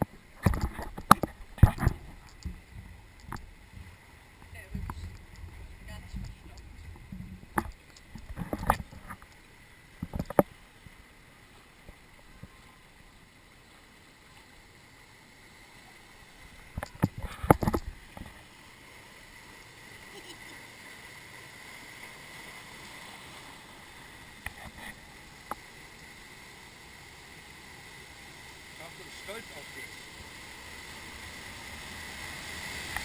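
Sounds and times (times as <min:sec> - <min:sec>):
rushing water: 0:00.0 - 0:33.0.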